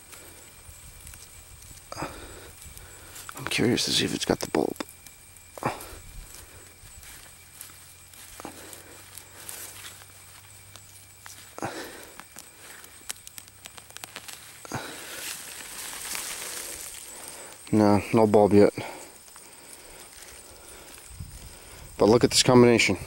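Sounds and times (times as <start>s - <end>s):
leaves rustling: 0.0s - 23.0s
soft crackles: 0.0s - 23.0s.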